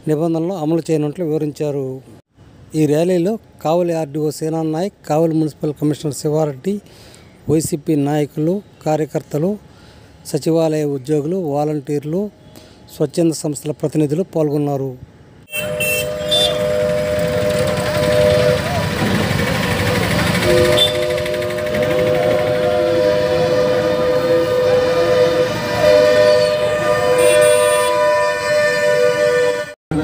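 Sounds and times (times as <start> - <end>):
two-note vehicle horn blasts: 15.5 - 29.8
motorbikes and cars passing: 15.6 - 23.1.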